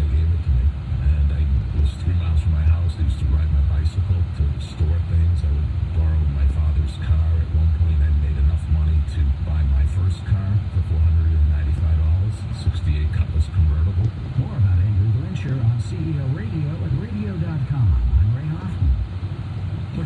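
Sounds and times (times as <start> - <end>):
indistinct talk: 0.0 - 19.0.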